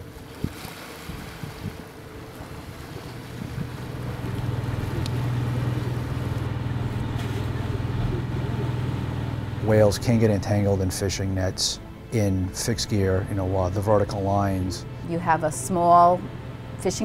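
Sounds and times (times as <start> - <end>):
steady low hum: 0.0 - 17.0
water: 0.0 - 17.0
wind: 0.0 - 17.0.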